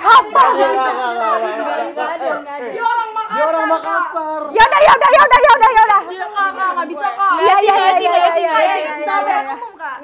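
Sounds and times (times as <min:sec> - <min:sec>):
people talking excitedly: 0:00.0 - 0:10.0.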